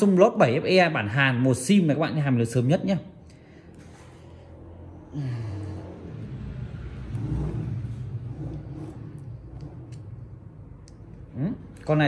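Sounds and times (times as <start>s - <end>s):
low engine rumble: 3.2s - 12.0s.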